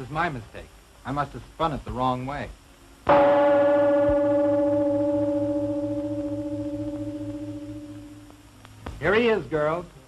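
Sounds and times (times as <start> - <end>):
gong ringing: 3.1 - 8.3.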